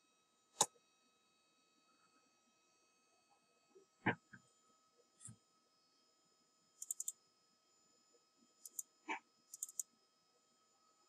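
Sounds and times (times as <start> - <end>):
computer mouse clicks: 6.8 - 7.2, 8.6 - 9.9.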